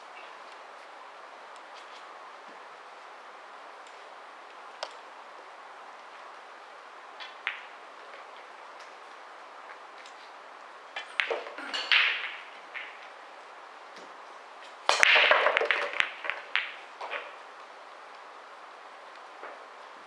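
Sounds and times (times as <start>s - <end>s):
cue ball cracking into rack: 7.2s - 7.8s, 11.0s - 13.2s, 14.9s - 17.4s
billiard balls clattering: 7.2s - 9.0s, 10.9s - 13.2s, 14.0s - 17.4s.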